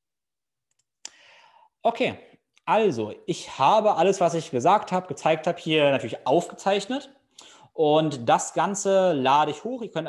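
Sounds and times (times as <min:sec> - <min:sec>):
man speaking: 0:01.8 - 0:07.2, 0:07.8 - 0:10.0.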